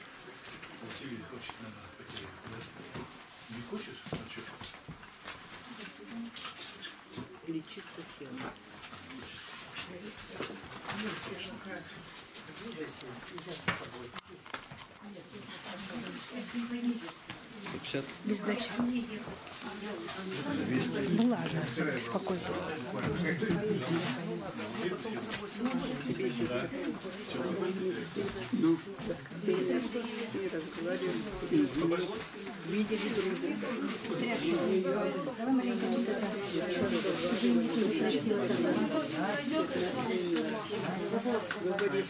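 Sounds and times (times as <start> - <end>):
murmur of overlapping voices: 0.0 - 42.0
people talking at once: 17.9 - 42.0.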